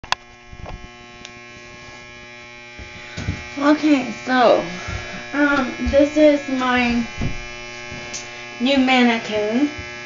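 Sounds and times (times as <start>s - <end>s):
steady electric buzz: 0.0s - 10.0s.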